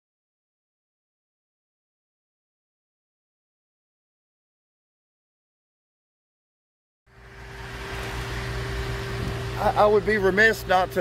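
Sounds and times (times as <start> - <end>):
steady low hum: 7.1 - 11.0
thin constant tone: 7.1 - 11.0.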